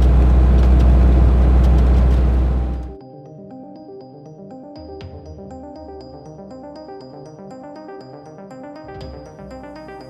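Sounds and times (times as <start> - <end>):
tyre and road noise: 0.0 - 2.9
diesel engine droning: 0.0 - 3.0.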